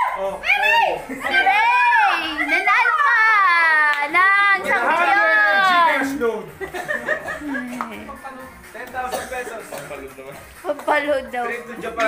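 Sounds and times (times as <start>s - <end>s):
people squealing and calling out: 0.0s - 6.2s.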